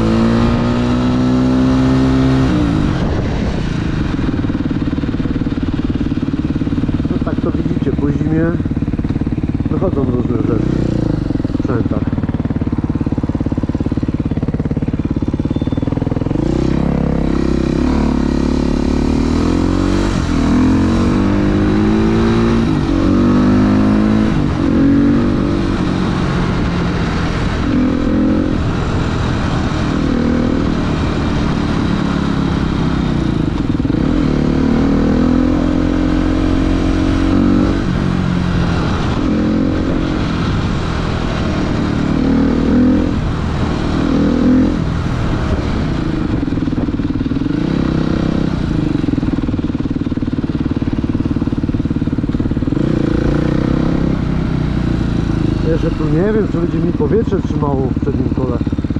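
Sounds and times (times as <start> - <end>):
dirt bike engine revving: 0.0 - 58.9.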